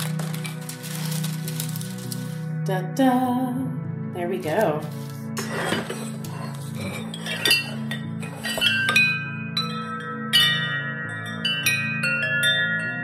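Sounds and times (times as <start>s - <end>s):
metal wind chime tubes clinking: 7.1s - 13.0s.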